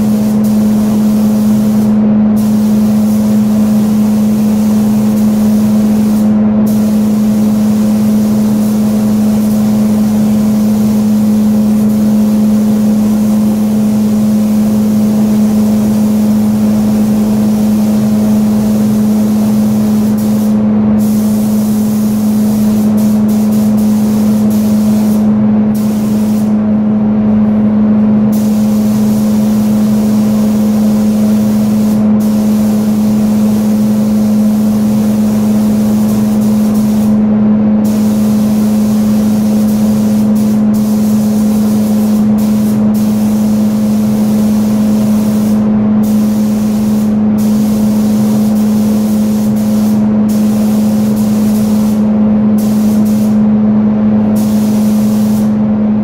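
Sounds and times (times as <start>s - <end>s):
spray gun hissing: 0.0s - 26.7s, 28.2s - 55.6s.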